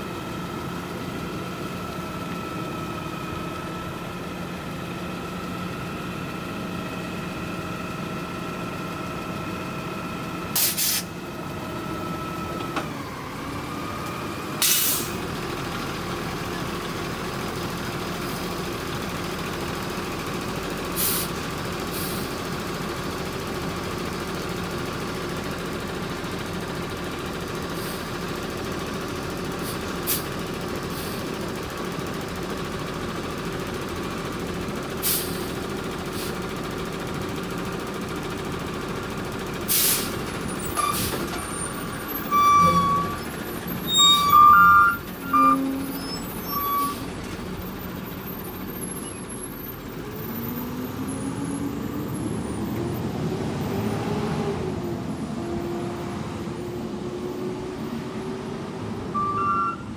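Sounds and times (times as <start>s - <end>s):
garbage truck engine: 0.0s - 59.9s
air brake hisses: 10.6s - 11.1s, 14.6s - 15.2s, 21.0s - 21.3s, 21.9s - 22.3s, 29.6s - 30.3s, 35.0s - 36.4s, 39.7s - 41.3s
high squeals and knocks: 40.7s - 47.0s.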